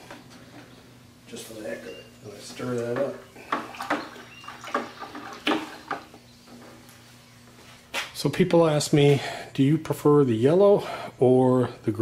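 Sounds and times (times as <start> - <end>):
stick stirring liquid in bucket: 2.8 - 6.2.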